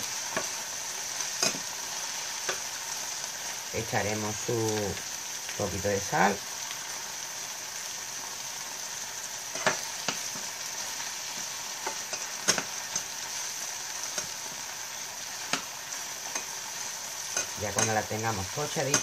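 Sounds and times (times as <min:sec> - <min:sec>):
vegetables sizzling in a frying pan: 0:00.0 - 0:19.0.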